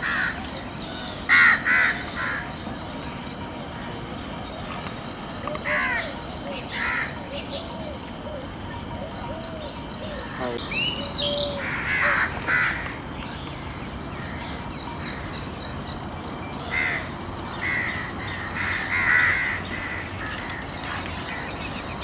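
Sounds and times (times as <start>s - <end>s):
harsh cawing bird calls: 0.0s - 2.9s, 5.5s - 15.8s, 16.6s - 22.0s
high background hiss: 0.0s - 22.0s.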